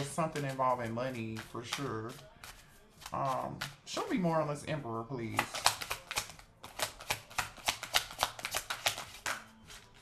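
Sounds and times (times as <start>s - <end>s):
cards being shuffled: 0.0s - 4.0s, 5.3s - 10.0s.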